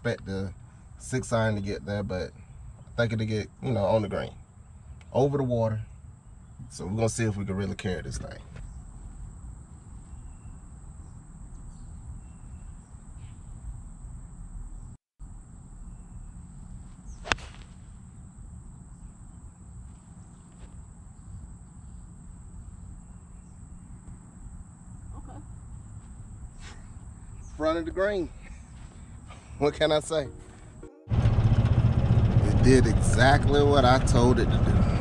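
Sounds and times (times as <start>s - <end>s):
golf club striking ball: 17.1s - 17.8s.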